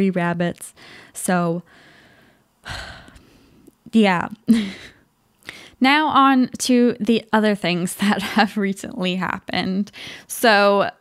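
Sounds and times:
woman sighing: 2.6 - 3.2.

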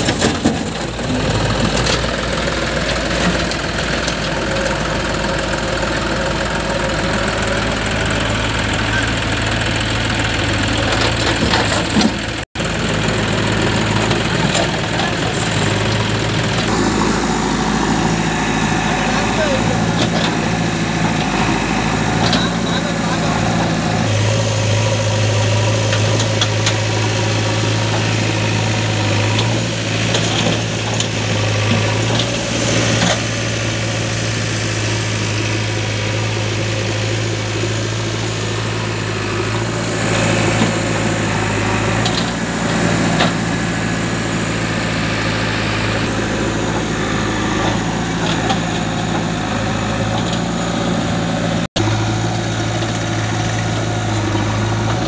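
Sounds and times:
diesel engines humming: 0.0 - 55.0.

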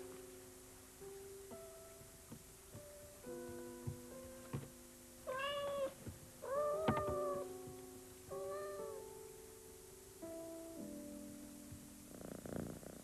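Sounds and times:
soft instrumental music: 0.0 - 13.0
cat meowing: 5.3 - 7.5, 8.3 - 9.0.

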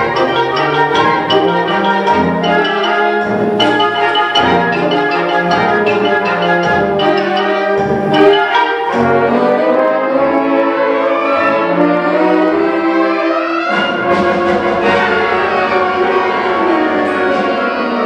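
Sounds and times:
low brass notes: 0.0 - 18.0
wind band playing chords: 0.0 - 18.0.

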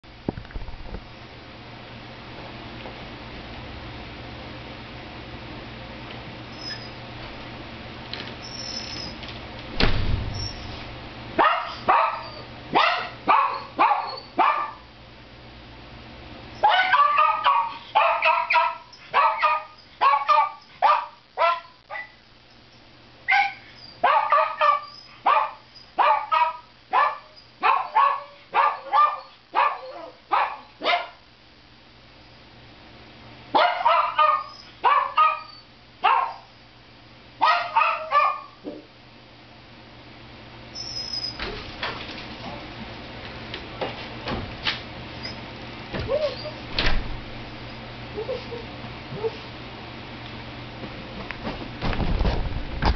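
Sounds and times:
door thudding shut: 9.8 - 10.7, 44.2 - 44.6, 45.9 - 47.3
small dog barking: 11.4 - 14.9, 16.6 - 22.2, 23.3 - 31.2, 33.5 - 36.5, 37.4 - 38.8.

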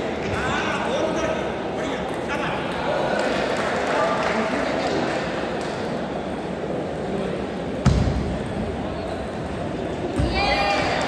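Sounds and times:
voices echoing in a hall: 0.0 - 11.0.

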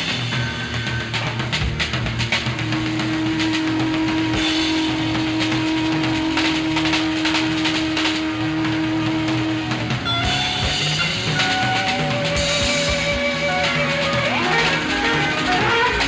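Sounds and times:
rock band playing blues-rock: 0.0 - 16.0
held guitar note: 10.0 - 16.0.

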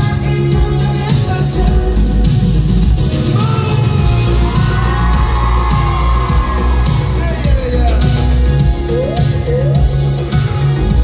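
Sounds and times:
live pop music with bass beat: 0.0 - 11.0
crowd yelling and whooping: 3.4 - 10.0.

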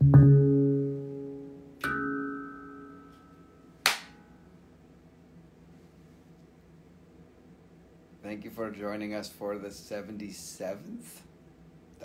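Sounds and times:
handpan note ringing: 0.0 - 3.7
hands clapping: 3.8 - 4.2.

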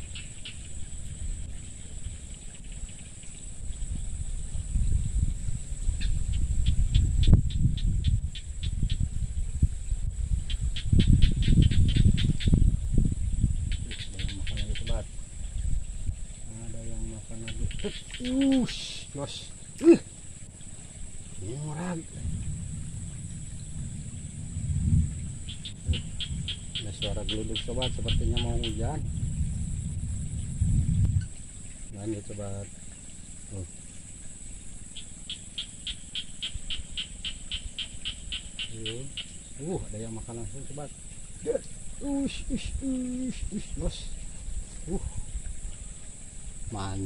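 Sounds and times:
steady low rumble: 0.0 - 18.2, 18.8 - 47.0
crickets chirping: 0.0 - 47.0.

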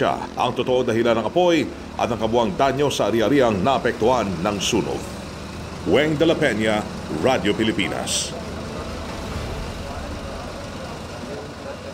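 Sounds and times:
fire truck engines idling: 0.0 - 11.9
faint voices: 6.6 - 11.9.

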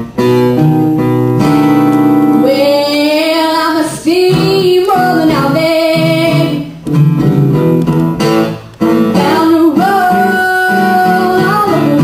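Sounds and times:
acoustic guitar strumming: 0.0 - 12.0
girl singing: 2.3 - 6.8, 9.1 - 12.0.

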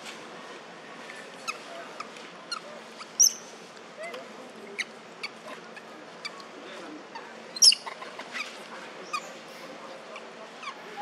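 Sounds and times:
infant monkey squealing: 7.6 - 8.2.

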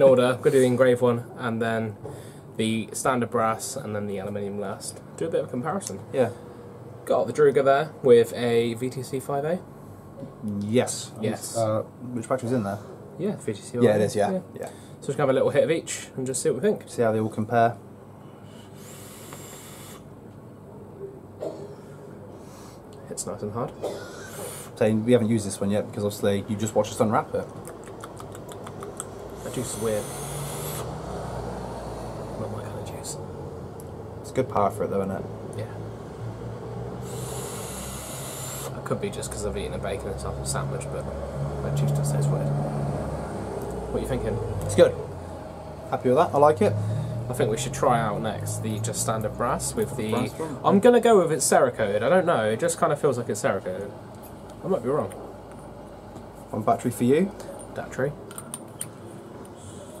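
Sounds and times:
breathy hiss of vapour exhaled: 18.4 - 20.0, 24.0 - 24.8.

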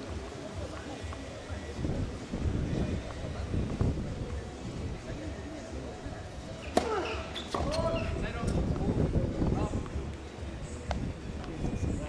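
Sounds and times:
faint voices murmuring: 0.0 - 12.0
tennis racket hitting ball: 6.6 - 7.8.

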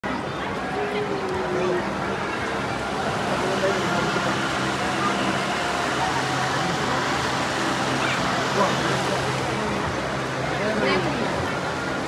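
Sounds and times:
crowd voices talking: 0.0 - 12.0.

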